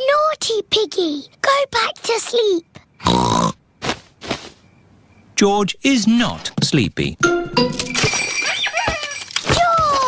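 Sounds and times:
cartoon pig snoring: 3.0s - 3.6s.

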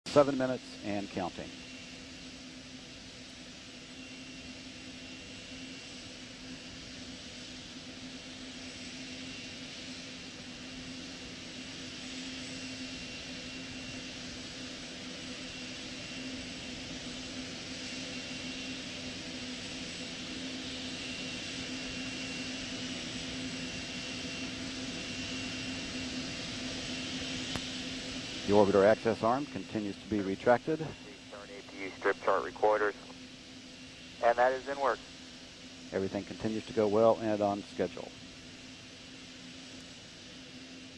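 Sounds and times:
low steady hum: 28.4s - 40.9s.

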